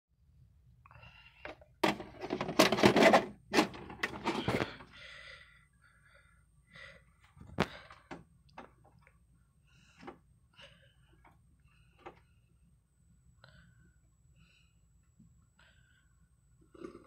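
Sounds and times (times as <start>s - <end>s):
vcr loading mechanism clatter: 1.8s - 4.8s.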